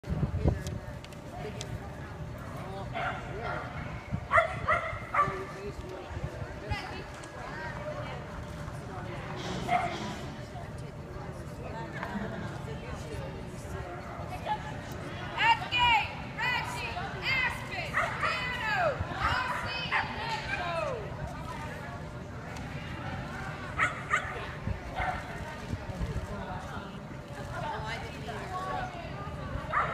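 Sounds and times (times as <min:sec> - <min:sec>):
dog barking: 0:04.3 - 0:05.4.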